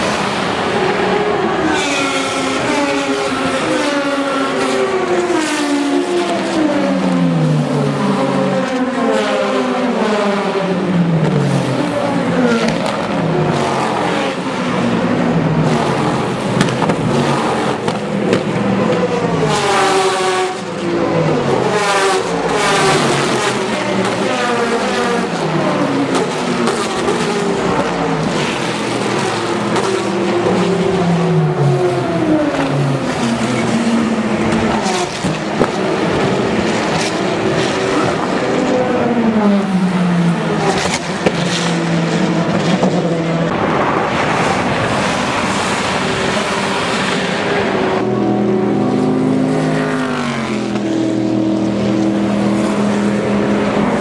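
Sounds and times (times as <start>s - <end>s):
race cars passing at speed: 0.0s - 54.0s.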